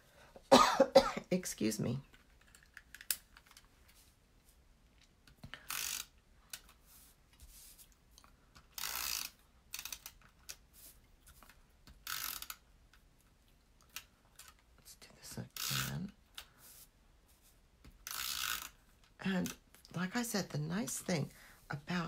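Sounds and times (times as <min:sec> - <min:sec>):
adhesive tape runner rolling: 0:05.6 - 0:06.8, 0:08.6 - 0:13.0, 0:15.5 - 0:16.5, 0:18.0 - 0:18.8.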